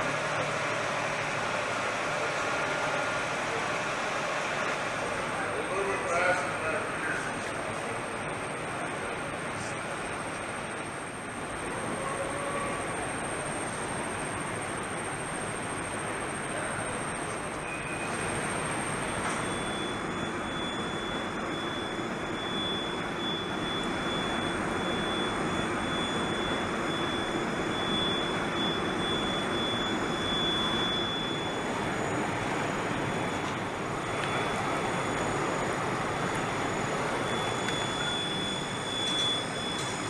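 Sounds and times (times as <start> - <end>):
high whistling tones: 36.4 - 40.0.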